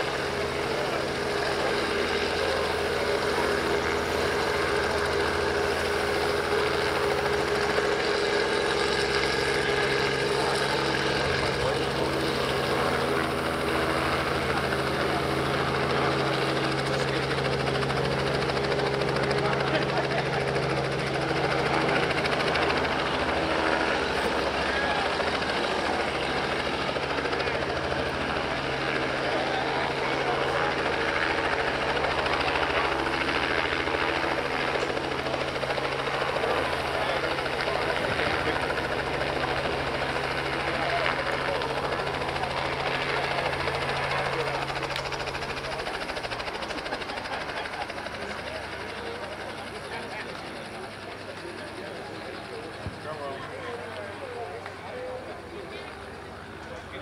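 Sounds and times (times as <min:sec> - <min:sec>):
helicopter engine and rotor drone: 0:00.0 - 0:57.0
people's voices: 0:00.0 - 0:57.0.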